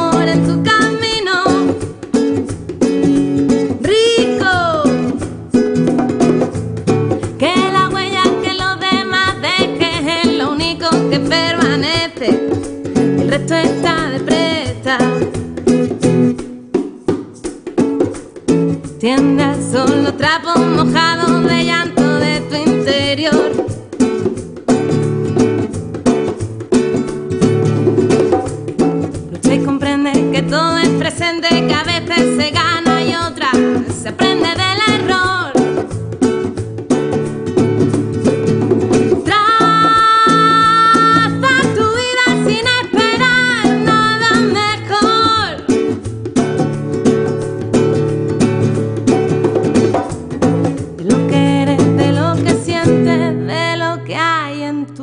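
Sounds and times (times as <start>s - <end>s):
woman singing: 0.0s - 2.2s, 3.6s - 5.3s, 7.1s - 15.7s, 18.9s - 24.0s, 29.3s - 35.9s, 39.2s - 46.0s, 51.0s - 55.0s
nylon-string guitar strummed: 0.0s - 55.0s.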